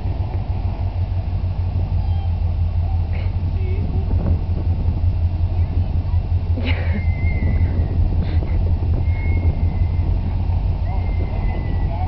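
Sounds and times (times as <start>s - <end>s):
truck engine running at low revs: 0.0s - 12.0s.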